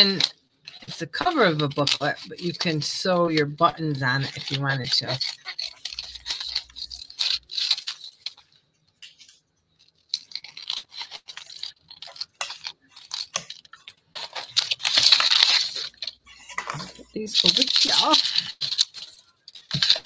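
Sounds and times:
scissors snipping paper: 0.0 - 8.4, 9.9 - 20.0
paper rustling: 0.0 - 20.0.

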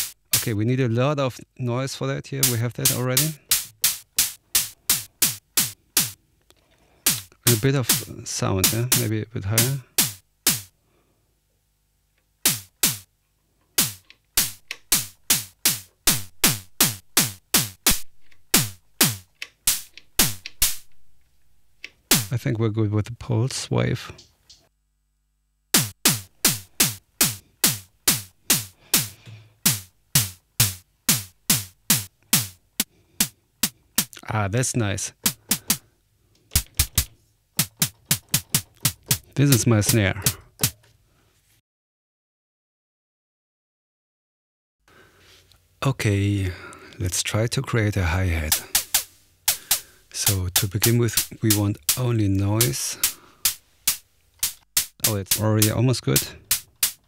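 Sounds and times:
synthesizer snare drum hits: 0.0 - 0.6, 2.4 - 6.2, 7.0 - 10.7, 12.4 - 13.1, 13.8 - 20.9, 22.1 - 22.4, 25.7 - 34.3, 35.1 - 35.9, 36.5 - 40.8, 48.4 - 57.0.

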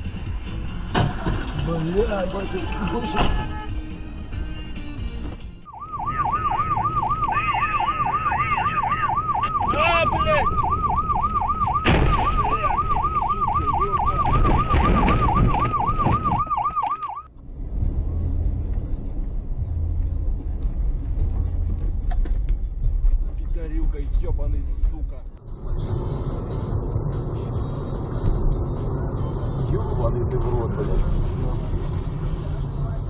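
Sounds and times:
vehicle driving rumble: 0.0 - 33.0
electronic siren yelping: 5.7 - 17.3.

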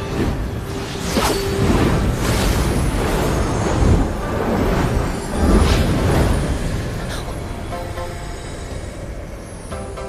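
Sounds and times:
low rumbling magic whoosh: 0.0 - 9.6.

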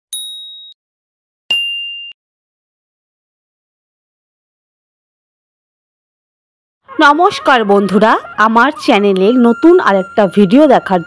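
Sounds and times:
electronic ding: 0.1 - 0.8, 1.5 - 2.2.

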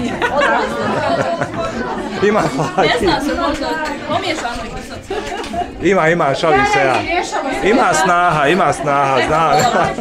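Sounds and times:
overlapping conversational chatter: 0.0 - 10.0.

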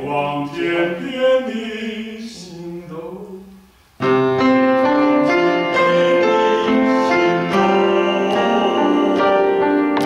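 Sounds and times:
piano chords: 4.0 - 10.0.

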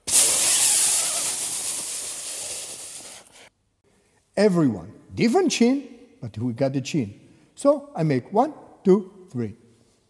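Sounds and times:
man blowing out air: 0.0 - 3.5.

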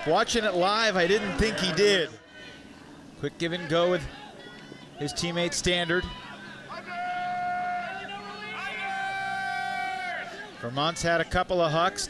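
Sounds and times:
people shouting: 0.0 - 2.9, 3.5 - 11.1.

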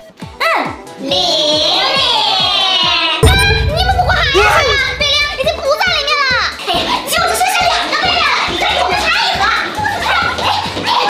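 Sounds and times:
background music with low beat: 3.2 - 5.8.

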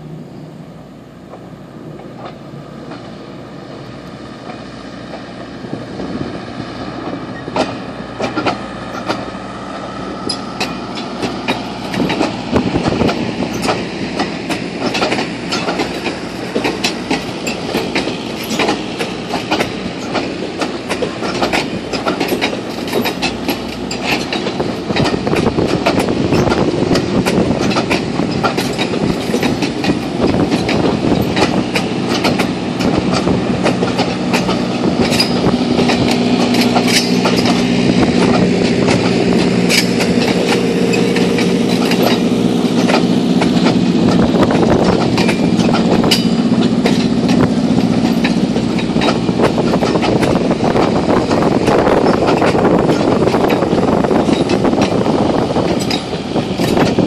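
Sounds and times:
train rumble: 0.0 - 57.0
train wheels clicking over rail joints: 0.9 - 57.0.

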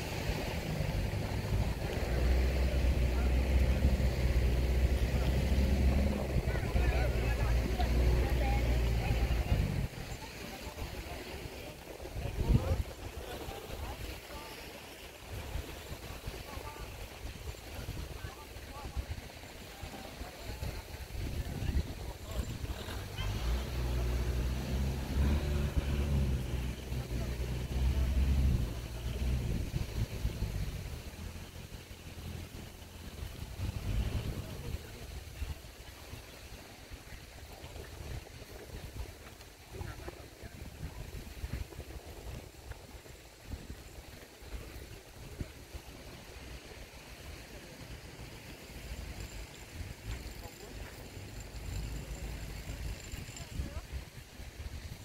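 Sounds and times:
faint wind: 0.0 - 55.0
motorboat engine humming: 0.0 - 55.0
surf: 0.0 - 55.0.

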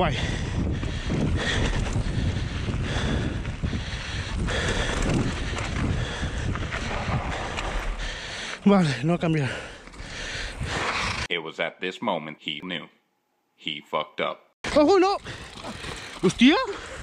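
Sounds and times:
wind buffeting microphone: 0.0 - 8.5
bike tyres rolling on loose ground: 0.1 - 11.2, 14.7 - 17.0
bike rattling over bumps: 0.2 - 11.3, 14.7 - 17.0.

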